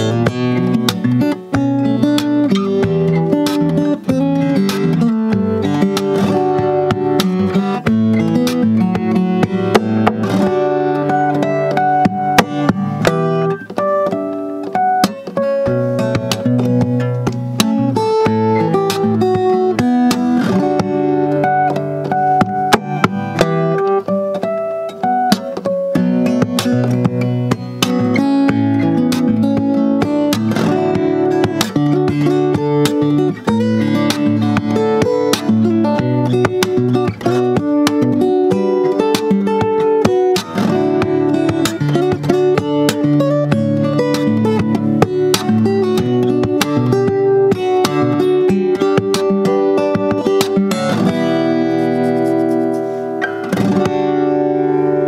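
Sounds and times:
fingerstyle acoustic guitar: 0.0 - 55.0.

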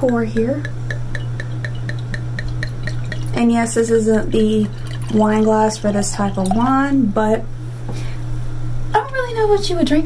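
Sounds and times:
low hum: 0.0 - 7.6
wine glugging into a glass: 1.1 - 3.4, 4.5 - 6.8.

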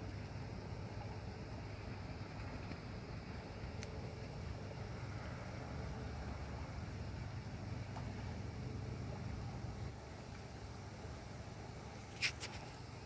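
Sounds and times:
faint hiss: 0.0 - 13.0
low outdoor rumble: 0.0 - 13.0.

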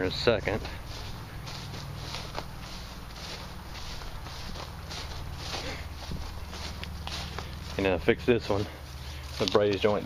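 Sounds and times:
footsteps on grass: 0.0 - 10.0.

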